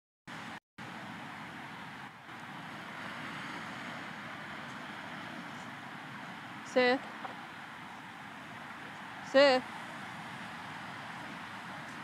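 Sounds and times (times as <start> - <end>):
surf on rocky shore: 0.3 - 12.0
wind noise: 0.3 - 12.0.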